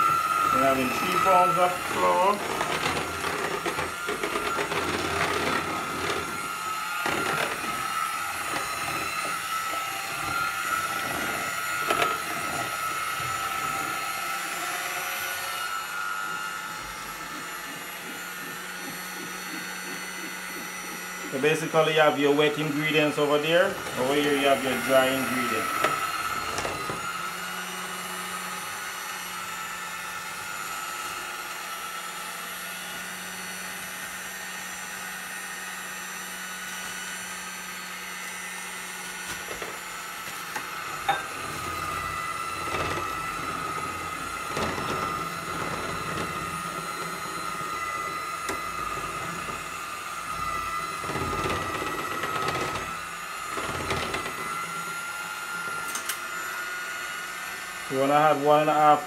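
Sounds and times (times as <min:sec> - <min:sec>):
electric hand mixer whining: 0:00.0 - 0:59.0.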